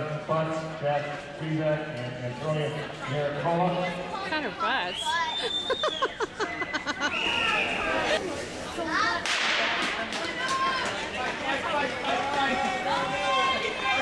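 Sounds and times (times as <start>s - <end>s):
spectators calling out and cheering: 2.7s - 14.0s.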